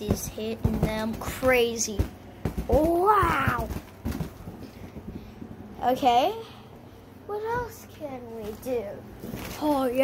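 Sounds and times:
fan blades knocking balloons: 0.0 - 6.3
ceiling fan humming: 0.0 - 10.0.

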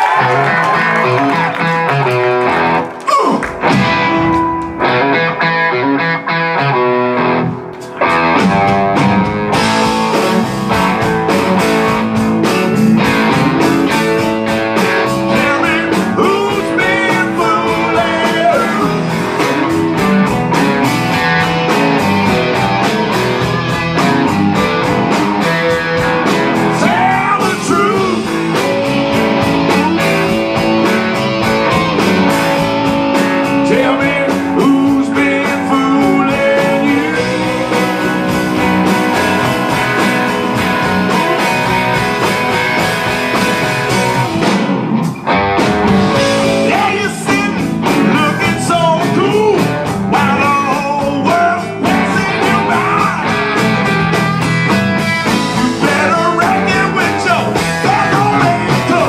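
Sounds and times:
blues-rock band playing: 0.0 - 59.0
drums: 0.0 - 59.0
electric guitars: 0.0 - 59.0.

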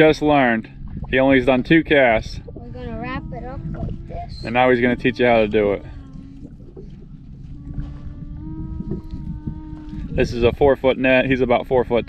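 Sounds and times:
faint motor drone: 0.0 - 12.0
wind and water rumble: 0.0 - 12.0.

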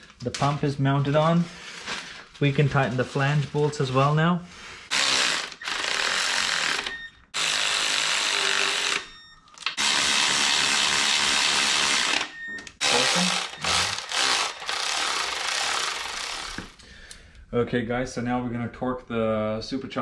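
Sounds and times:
cordless electric ratchet running: 4.9 - 16.8.

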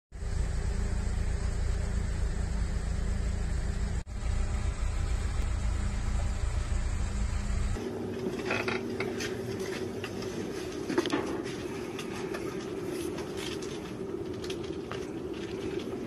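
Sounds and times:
engine idling: 0.1 - 16.0.

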